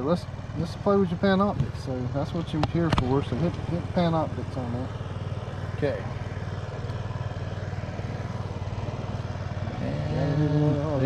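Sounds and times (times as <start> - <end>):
outboard boat motor idling: 0.0 - 11.0.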